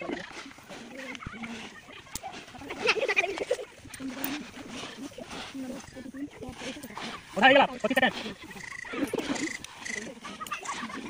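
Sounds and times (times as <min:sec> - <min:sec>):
group voices outdoors: 0:00.0 - 0:11.0.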